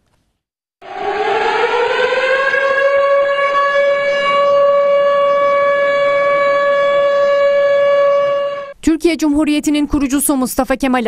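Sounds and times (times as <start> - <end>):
siren wailing: 0.8 - 8.8.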